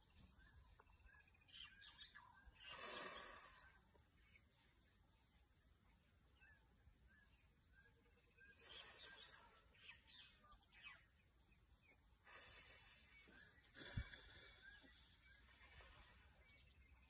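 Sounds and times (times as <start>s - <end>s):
small bird chirping: 0.0s - 17.0s
soft hissing noise: 11.4s - 17.0s.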